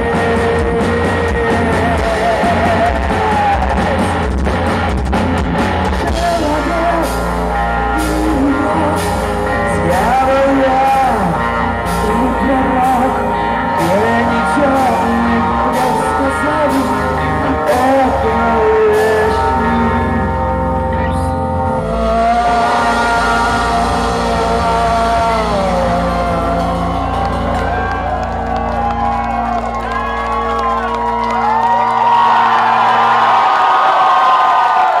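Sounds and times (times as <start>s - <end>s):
crowd cheering: 0.0s - 8.6s, 22.3s - 35.0s
live heavy metal band: 0.0s - 35.0s.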